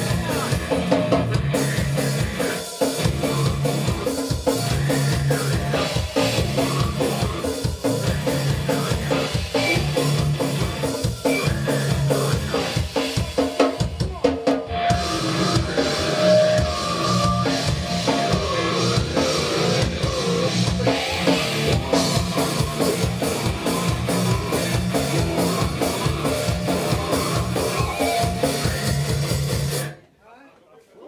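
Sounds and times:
grindcore band playing: 0:00.0 - 0:30.0.

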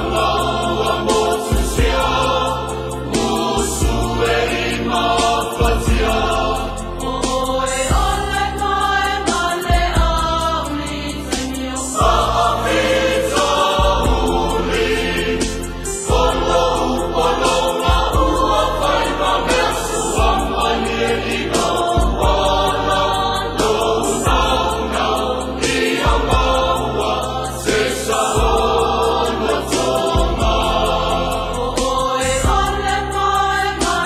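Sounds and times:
choir singing a hymn: 0:00.0 - 0:34.0.

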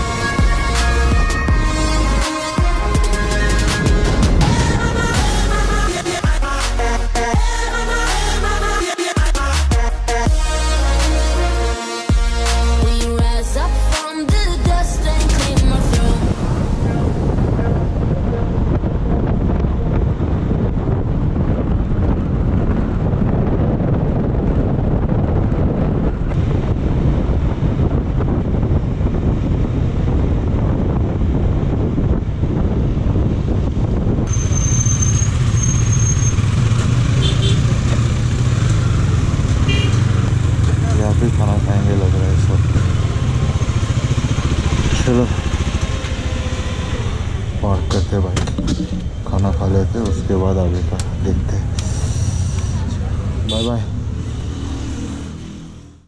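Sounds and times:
wind rumble on microphone: 0:00.0 - 0:06.0, 0:14.4 - 0:56.0
motorcycle engine running: 0:34.3 - 0:47.6.

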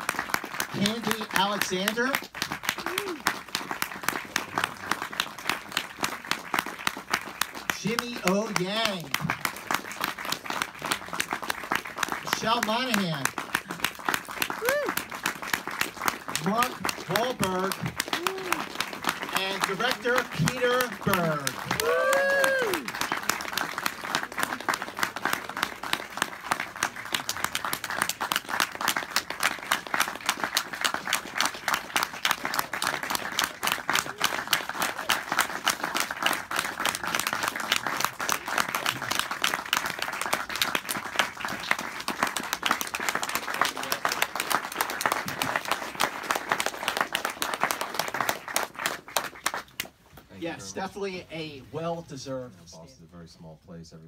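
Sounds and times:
audience applause: 0:00.0 - 0:50.0.

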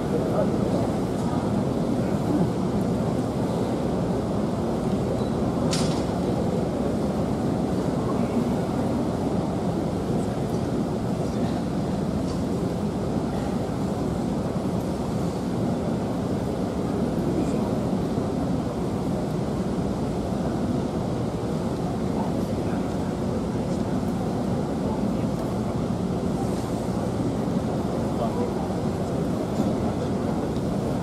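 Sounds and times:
sports hall background noise: 0:00.0 - 0:31.0.

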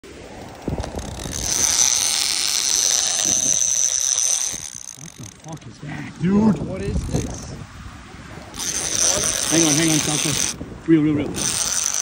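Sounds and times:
fishing reel drag whining: 0:00.3 - 0:05.6, 0:08.4 - 0:10.6, 0:11.3 - 0:12.0.

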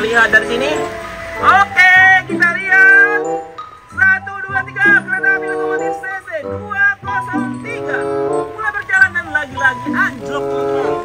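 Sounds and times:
melody over held low chords: 0:00.0 - 0:11.0.

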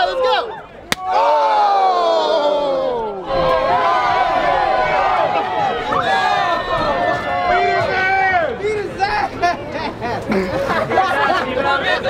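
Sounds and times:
crowd shouting over each other: 0:00.0 - 0:08.6.

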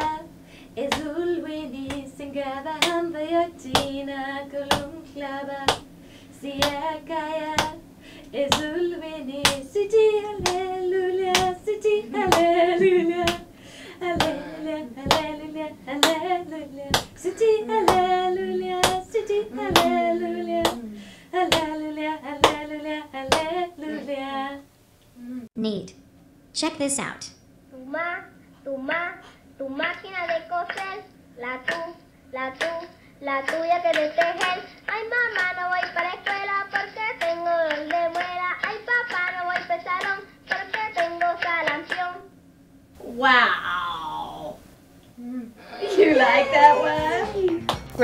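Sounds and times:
woman singing gospel unaccompanied: 0:00.0 - 0:24.7, 0:28.8 - 0:42.3, 0:45.9 - 0:48.0
hand claps: 0:00.9 - 0:01.1, 0:01.8 - 0:02.1, 0:02.8 - 0:03.0, 0:03.7 - 0:04.0, 0:04.7 - 0:05.0, 0:05.7 - 0:05.9, 0:06.6 - 0:06.9, 0:07.5 - 0:07.8, 0:08.5 - 0:08.8, 0:09.4 - 0:09.6, 0:10.4 - 0:10.7, 0:11.3 - 0:11.6, 0:12.2 - 0:13.5, 0:14.1 - 0:14.4, 0:15.0 - 0:15.4, 0:16.0 - 0:16.3, 0:16.9 - 0:17.2, 0:17.8 - 0:20.8, 0:21.5 - 0:21.8, 0:22.4 - 0:22.7, 0:23.3 - 0:23.6, 0:30.3 - 0:31.0, 0:31.6 - 0:31.9, 0:32.6 - 0:42.1, 0:47.0 - 0:48.0
person singing: 0:10.4 - 0:13.4, 0:14.0 - 0:16.4, 0:17.2 - 0:22.5, 0:23.2 - 0:24.3, 0:45.2 - 0:48.0.

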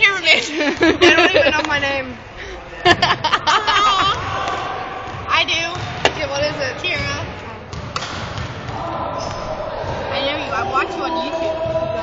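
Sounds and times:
echoing voices and laughter: 0:00.0 - 0:07.6, 0:08.7 - 0:12.0
basketball bouncing on wooden floor: 0:05.1 - 0:08.8.

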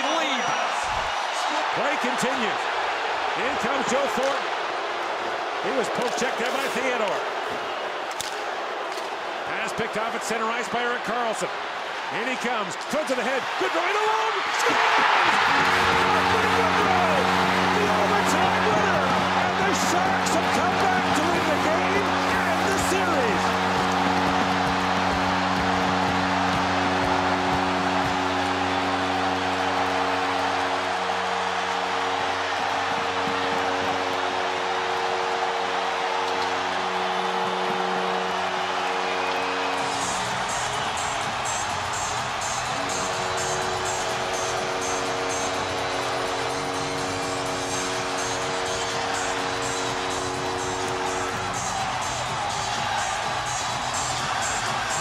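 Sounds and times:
arena crowd cheering: 0:00.0 - 0:55.0
music with sustained chords: 0:15.2 - 0:55.0
song with fast beat: 0:39.8 - 0:55.0.

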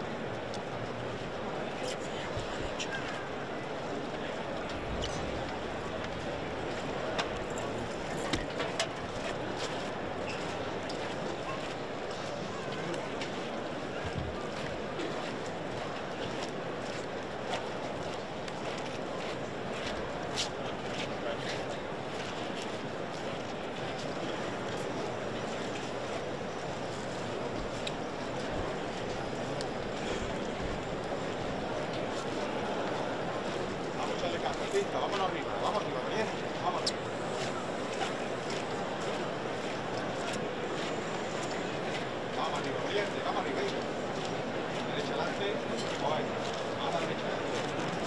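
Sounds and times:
crowd hubbub: 0:00.0 - 0:48.0.

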